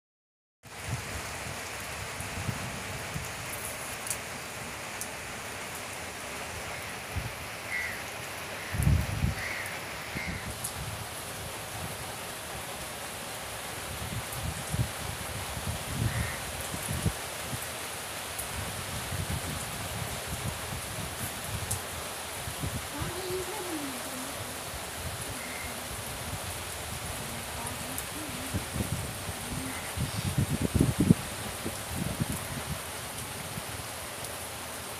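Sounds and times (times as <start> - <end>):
wind rumbling on microphone: 0.7 - 4.2, 8.6 - 12.1, 13.9 - 17.6, 18.4 - 33.9
rain hissing: 0.7 - 34.9.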